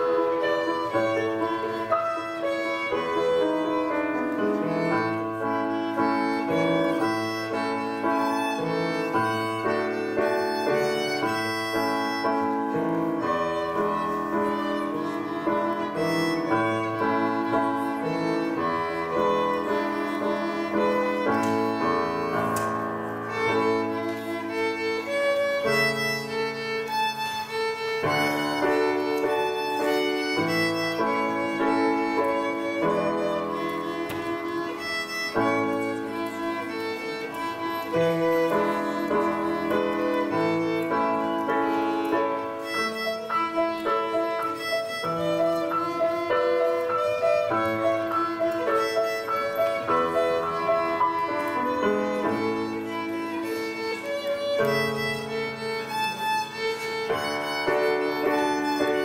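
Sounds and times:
piano accompaniment: 0:00.0 - 0:59.0
violin melody: 0:00.0 - 0:59.0.

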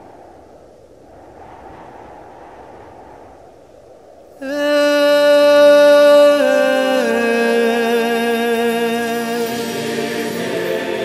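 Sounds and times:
low muffled rushing noise: 0:00.0 - 0:04.3.

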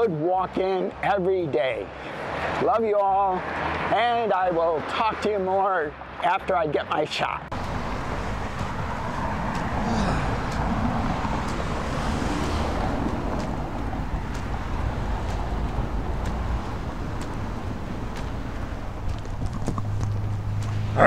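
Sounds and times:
low traffic rumble: 0:00.0 - 0:21.0
wind: 0:00.0 - 0:21.0
footsteps on sidewalk: 0:00.3 - 0:21.0
car passing: 0:07.5 - 0:21.0.

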